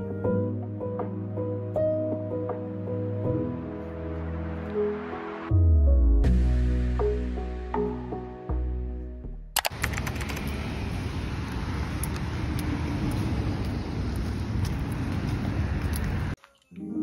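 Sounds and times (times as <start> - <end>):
rushing street noise: 2.6 - 5.5, 9.6 - 16.4.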